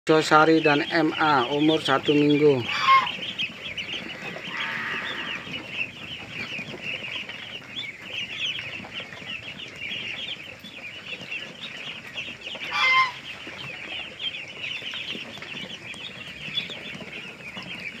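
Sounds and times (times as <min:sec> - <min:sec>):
ducklings peeping: 0:00.1 - 0:18.0.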